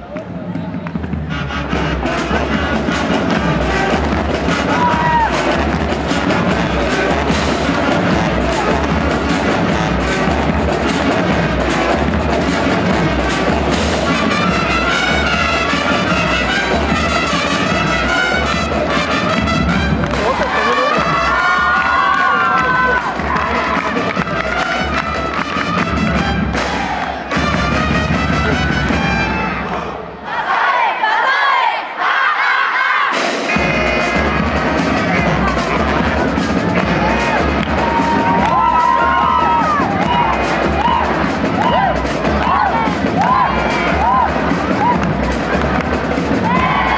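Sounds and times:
marching band playing: 0:00.3 - 0:30.0, 0:33.0 - 0:46.9
audience cheering: 0:04.6 - 0:05.6, 0:20.0 - 0:27.8, 0:36.3 - 0:46.9.

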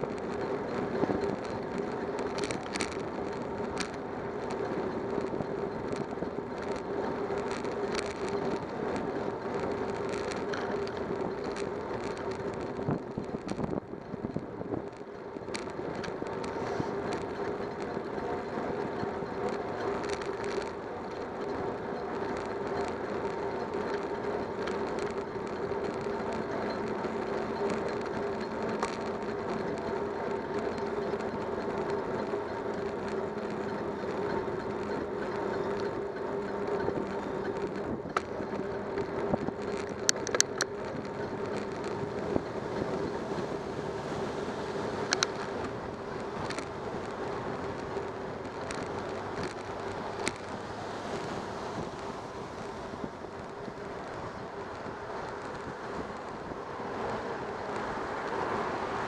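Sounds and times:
bicycle rolling on pavement: 0:00.0 - 0:59.0
clicks and rattles: 0:00.0 - 0:59.0.

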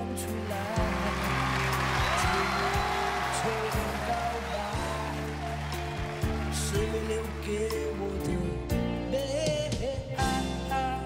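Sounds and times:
live pop ballad with band: 0:00.0 - 0:11.0.

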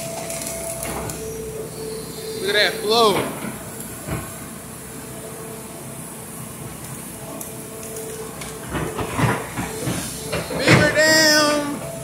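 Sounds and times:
excavator engine running: 0:00.0 - 0:12.0
faint steady whine: 0:00.0 - 0:12.0.

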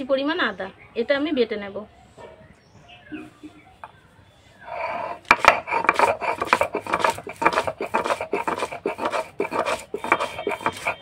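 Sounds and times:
stone roller scraping on stone slab: 0:04.6 - 0:11.0.

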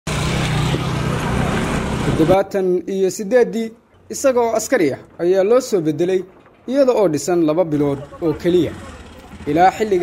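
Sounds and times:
motorcycle: 0:00.1 - 0:02.4, 0:07.8 - 0:10.0
street traffic: 0:00.1 - 0:03.0, 0:07.6 - 0:10.0.

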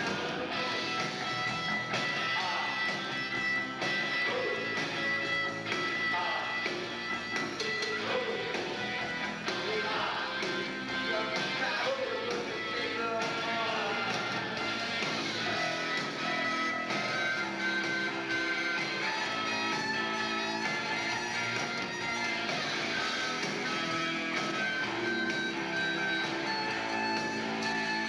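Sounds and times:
rock band playing live: 0:00.0 - 0:28.0.

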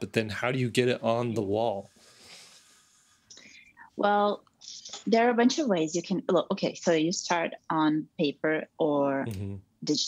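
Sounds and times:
person speaking: 0:00.0 - 0:01.9, 0:09.0 - 0:09.6
faint breathing: 0:01.8 - 0:03.9
whispered mouth noises: 0:09.3 - 0:09.6.

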